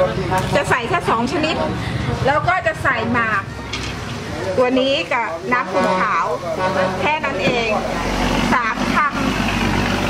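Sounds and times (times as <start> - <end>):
woman's voice: 0.5 - 3.5, 4.6 - 9.3
vehicle engine rumbling: 5.6 - 10.0.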